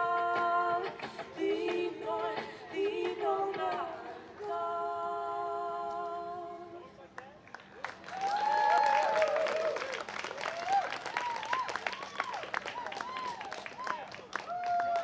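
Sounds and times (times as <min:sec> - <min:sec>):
women singing: 0:00.0 - 0:06.8
audience clapping and cheering: 0:07.2 - 0:15.0.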